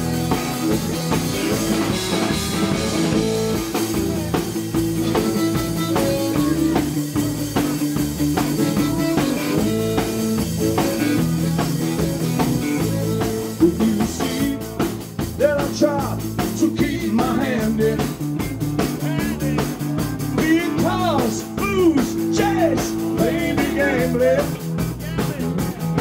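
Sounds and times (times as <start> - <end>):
harmonica: 0.0 - 14.8
bass guitar: 0.0 - 26.0
drum kit: 0.0 - 26.0
electric guitar: 0.0 - 26.0.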